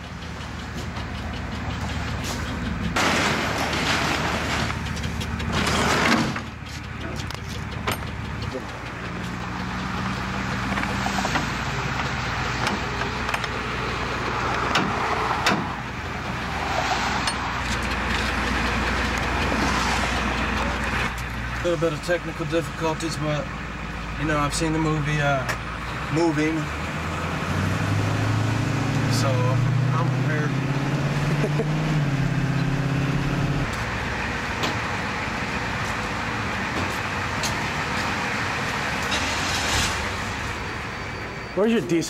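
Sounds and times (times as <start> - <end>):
truck engine humming: 0.0 - 42.0.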